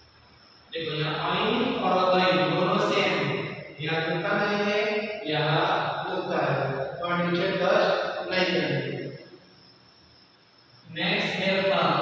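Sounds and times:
voice chanting sing-song recitation: 0:10.9 - 0:12.0.

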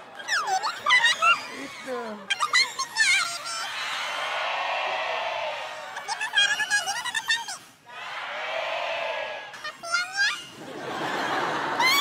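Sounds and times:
high squeaky shifted voice chatter: 0:00.2 - 0:03.8, 0:05.8 - 0:07.7, 0:09.6 - 0:10.6
audience laughter: 0:10.5 - 0:12.0.

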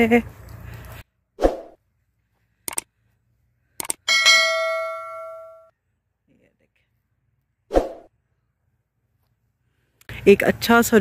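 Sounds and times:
bright bell ding: 0:04.1 - 0:05.7.

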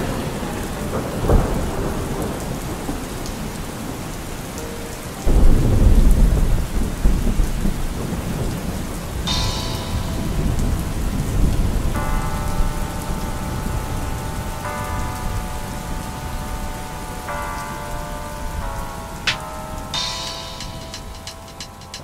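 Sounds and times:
steady rain: 0:00.0 - 0:22.0
thunder rumbling: 0:00.0 - 0:22.0.

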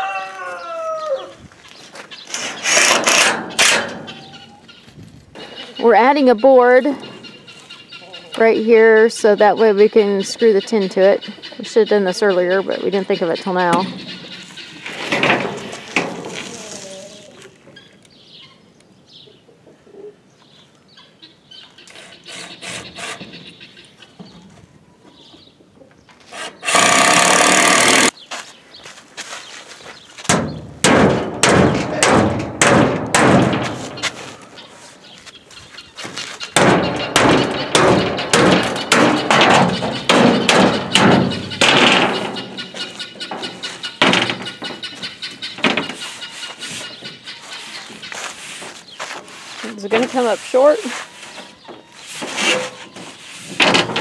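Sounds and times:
corrugated tin sheets clattering: 0:02.3 - 0:04.4, 0:13.0 - 0:16.9, 0:30.3 - 0:34.5, 0:36.0 - 0:54.0
cordless drill driving screw: 0:26.3 - 0:28.1.

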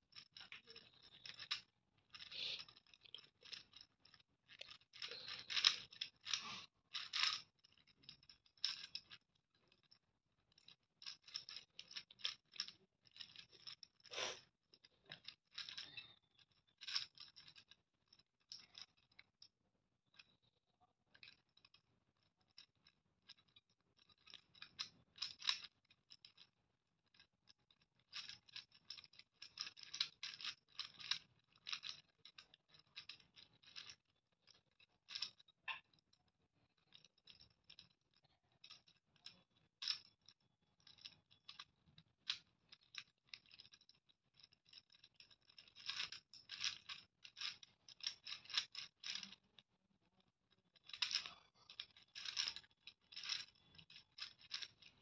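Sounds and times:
puzzle cube gears clicking: 0:00.0 - 0:09.8, 0:10.5 - 0:17.8, 0:27.1 - 0:36.0, 0:40.9 - 0:49.6, 0:50.8 - 0:55.0.

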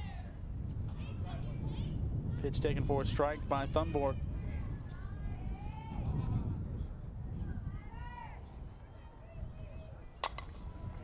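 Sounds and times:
bat striking ball crack: 0:10.2 - 0:10.6.

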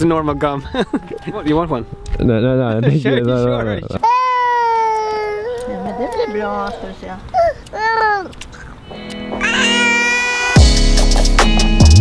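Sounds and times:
small child crying: 0:00.3 - 0:02.3, 0:04.0 - 0:08.8, 0:09.4 - 0:10.7.

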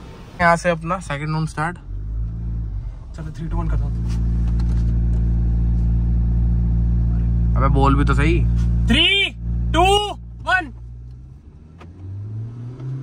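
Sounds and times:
road noise: 0:00.0 - 0:13.0.

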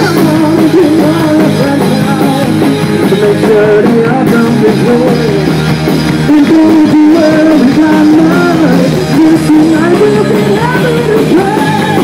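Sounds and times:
drum kit: 0:00.0 - 0:12.0
electric guitar: 0:00.0 - 0:12.0
man singing: 0:00.0 - 0:12.0.

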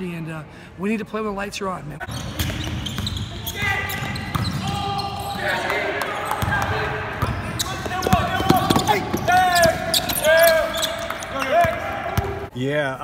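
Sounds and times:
players calling out: 0:02.0 - 0:12.5
sneakers squealing on floor: 0:02.0 - 0:12.5
basketballs bouncing: 0:02.1 - 0:12.5.

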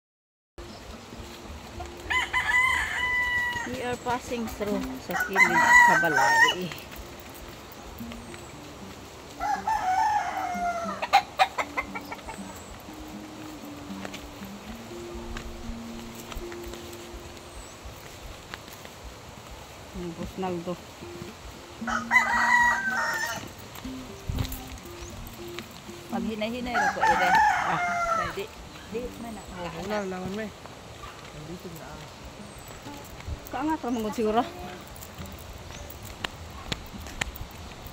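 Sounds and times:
rooster crowing: 0:02.0 - 0:03.8, 0:05.1 - 0:06.8, 0:09.4 - 0:12.0, 0:21.8 - 0:23.6, 0:26.7 - 0:28.6.

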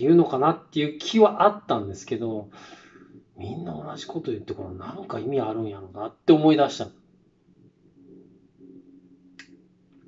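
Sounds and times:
low hum: 0:01.4 - 0:10.0.

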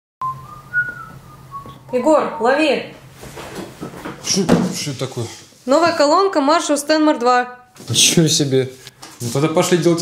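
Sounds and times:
person whistling a tune: 0:00.2 - 0:01.8.

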